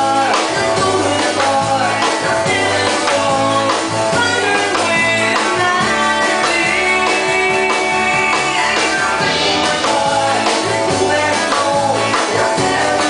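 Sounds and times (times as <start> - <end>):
live band playing slow country song: 0.0 - 13.0.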